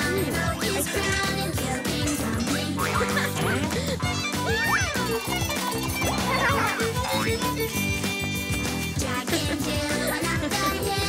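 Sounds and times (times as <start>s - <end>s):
children's song: 0.0s - 11.0s.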